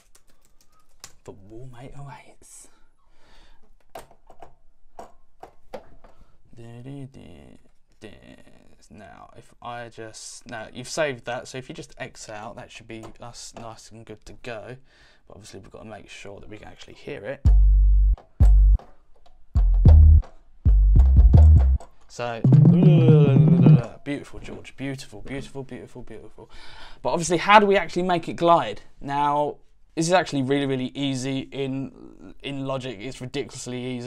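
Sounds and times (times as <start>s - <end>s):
deep bass notes: 17.5s - 18.8s, 19.6s - 21.8s, 22.4s - 23.9s
man humming: 22.4s - 23.9s.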